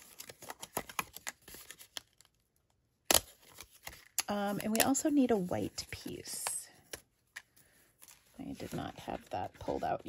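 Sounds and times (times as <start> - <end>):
paper rustling: 0.0 - 2.4, 3.3 - 10.0.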